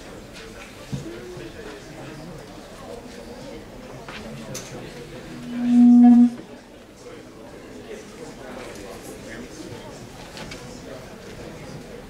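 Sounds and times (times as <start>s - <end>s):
low electronic tone: 5.3s - 6.4s.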